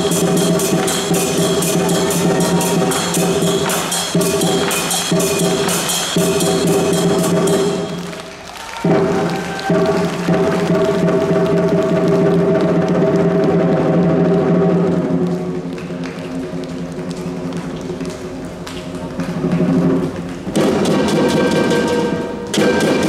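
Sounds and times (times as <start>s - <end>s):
gong: 0.0s - 8.2s, 20.6s - 23.0s
cymbals: 0.0s - 15.7s, 19.3s - 23.0s
lion dance drum: 0.0s - 18.0s, 19.0s - 23.0s.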